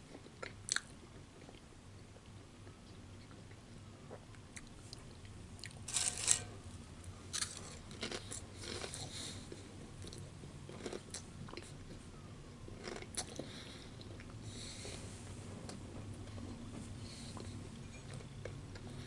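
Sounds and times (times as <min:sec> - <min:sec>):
chewing food: 0:07.3 - 0:12.1, 0:12.7 - 0:15.0.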